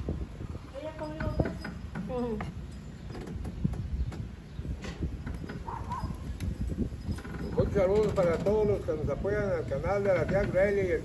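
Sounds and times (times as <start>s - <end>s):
wind buffeting microphone: 0.0s - 11.0s
man talking: 7.6s - 11.0s.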